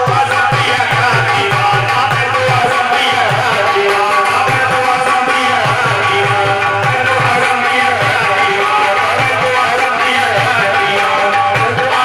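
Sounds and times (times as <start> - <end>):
hand drum beat: 0.0 - 12.0
harmonium-like tones: 0.0 - 12.0
people singing: 0.0 - 12.0.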